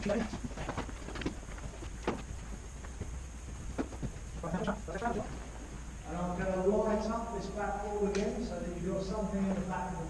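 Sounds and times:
footsteps on concrete: 0.0s - 4.5s
low steady hum: 0.0s - 10.0s.

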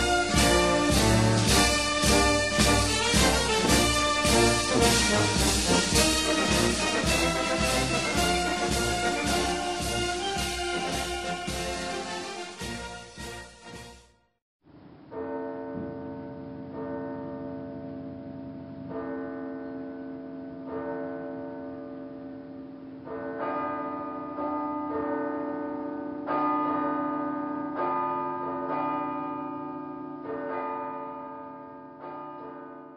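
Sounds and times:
church bells ringing: 0.0s - 13.6s, 15.1s - 32.9s.

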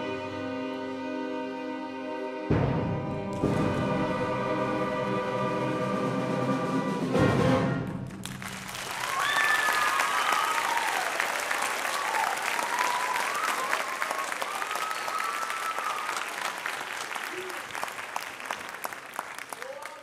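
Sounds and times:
audience applause: 8.0s - 20.0s.

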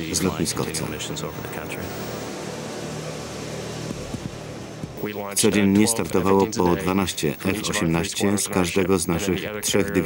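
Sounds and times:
jet engines at full power: 0.0s - 8.2s.

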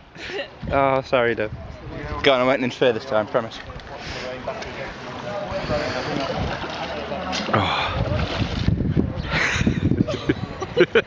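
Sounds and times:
pool water splashing: 2.2s - 11.0s.

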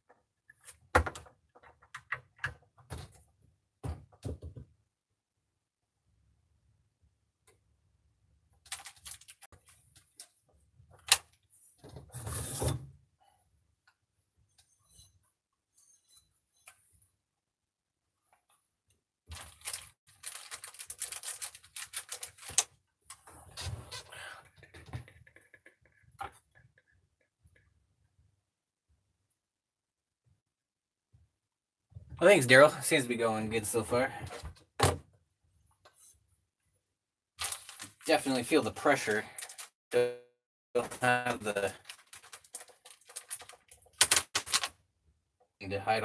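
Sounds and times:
plastic bag crinkling: 8.7s - 9.5s, 19.3s - 22.6s, 37.4s - 38.1s, 39.4s - 39.7s, 41.6s - 44.7s.

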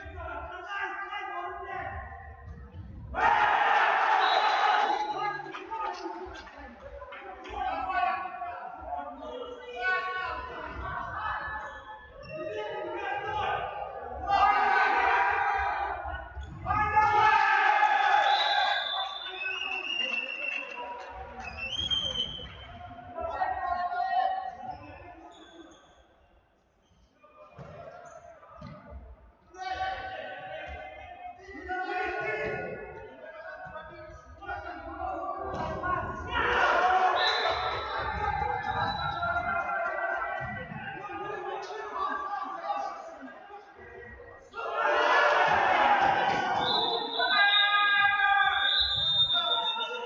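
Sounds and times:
sports hall noise: 0.0s - 50.0s.

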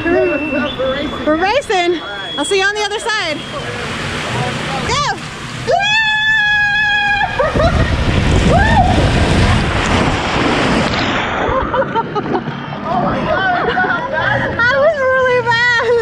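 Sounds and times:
water rushing in slide tube: 0.0s - 16.0s
water splash: 2.6s - 13.7s
person whooping: 5.7s - 9.6s.

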